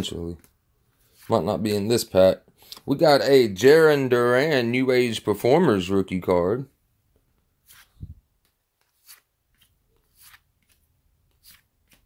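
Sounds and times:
cardboard cards rustling: 7.6 - 12.0.

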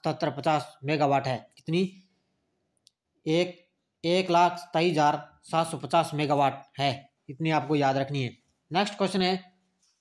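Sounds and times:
man speaking: 0.0 - 2.2, 3.2 - 9.7.

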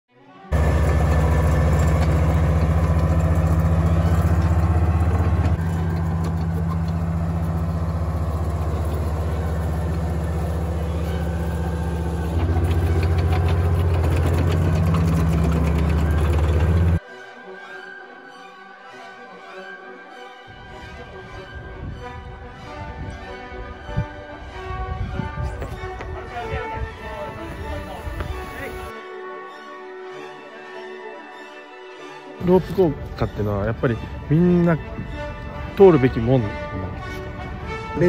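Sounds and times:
tank engine deep rumble: 0.5 - 17.0, 32.4 - 38.0.

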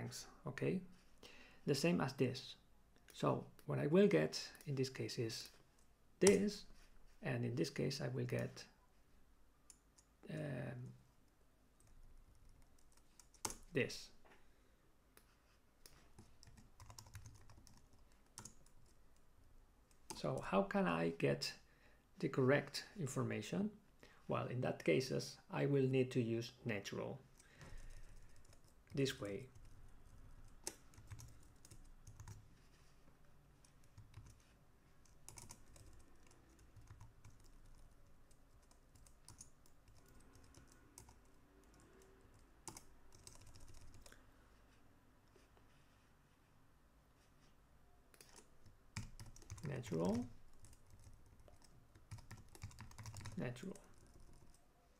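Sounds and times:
computer keyboard typing: 11.8 - 13.6, 15.8 - 19.0, 27.8 - 28.8, 30.5 - 32.4, 33.8 - 34.4, 35.0 - 44.2, 48.2 - 54.6.

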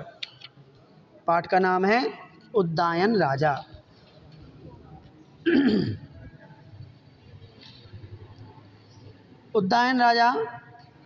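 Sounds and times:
man clearing his throat: 5.4 - 6.2.

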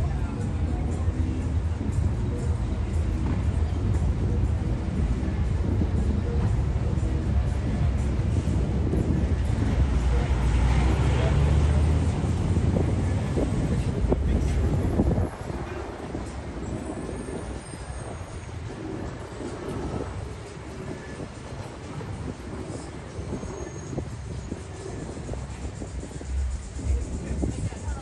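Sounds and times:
passing vehicles rumble: 0.0 - 28.0
quiet traffic ambience: 0.0 - 28.0.

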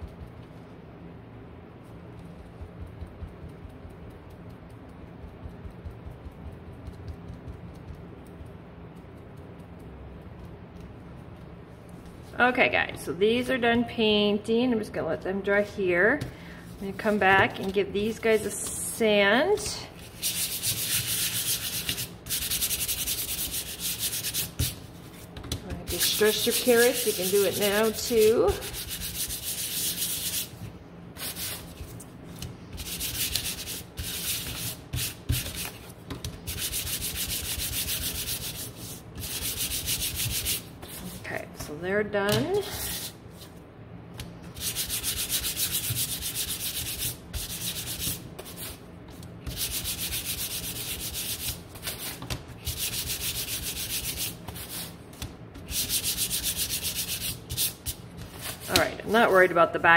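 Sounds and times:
sanding sponge rubbing wood: 20.1 - 24.8, 25.9 - 30.5, 32.8 - 35.7, 36.5 - 41.2, 44.6 - 48.7, 49.5 - 51.5, 52.7 - 54.8, 55.7 - 57.9.

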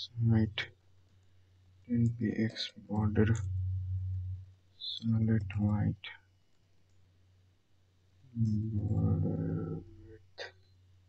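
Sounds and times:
low hum: 1.9 - 6.1, 8.3 - 10.2.

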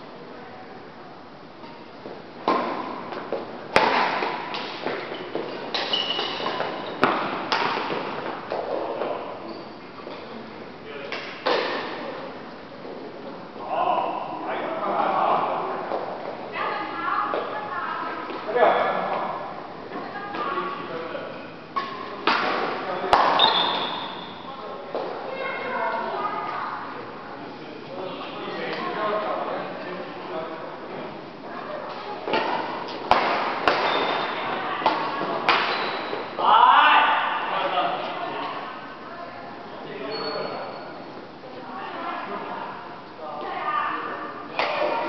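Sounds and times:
shoes squeaking on wooden floor: 4.7 - 10.2, 23.4 - 24.3, 33.7 - 36.3
rackets striking shuttlecock: 5.7 - 8.1, 31.9 - 36.1
high-pitched squeak: 40.1 - 40.8.

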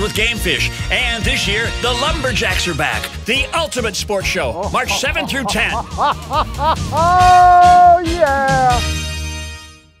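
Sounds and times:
background music with bass: 0.0 - 10.0
person laughing: 4.2 - 8.8.

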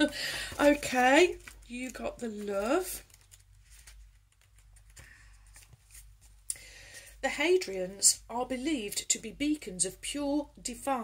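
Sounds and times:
paper rustling: 0.0 - 7.2.

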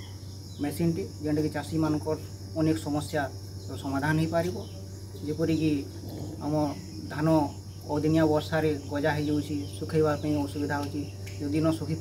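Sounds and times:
insects chirring: 0.0 - 12.0
low steady hum: 0.0 - 12.0
man speaking: 0.6 - 12.0.

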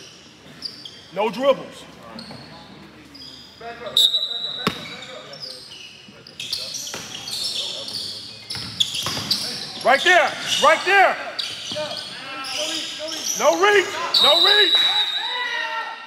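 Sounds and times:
sneakers squeaking on court: 0.0 - 1.2, 2.0 - 14.6.

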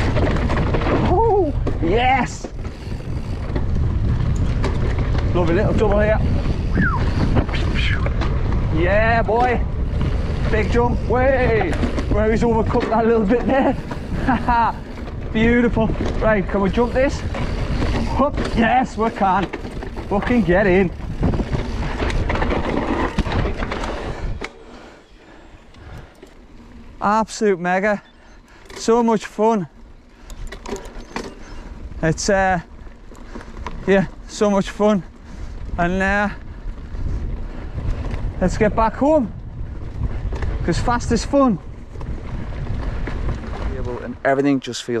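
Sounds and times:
sharp clicks of bike: 0.0 - 27.0, 27.8 - 38.5, 39.8 - 44.7
wind buffeting microphone: 0.0 - 28.8, 29.6 - 44.3
mountain bike rumbling and rattling: 0.0 - 45.0.

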